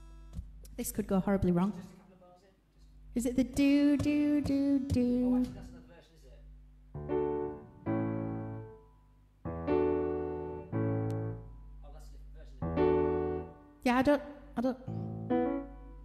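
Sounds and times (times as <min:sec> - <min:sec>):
piano chords ringing: 0:07.0 - 0:16.0.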